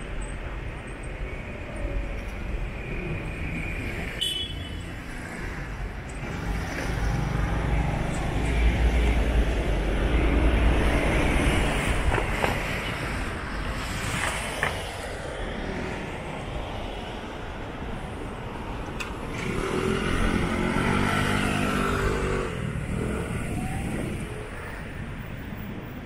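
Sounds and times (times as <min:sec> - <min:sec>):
street traffic: 0:00.0 - 0:26.0
motor scooter passing: 0:19.3 - 0:24.4.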